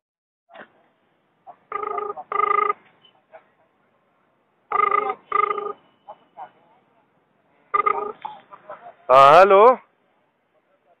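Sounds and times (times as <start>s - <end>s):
telephone ringback tone: 1.7s - 2.8s, 4.7s - 6.0s, 7.7s - 8.2s.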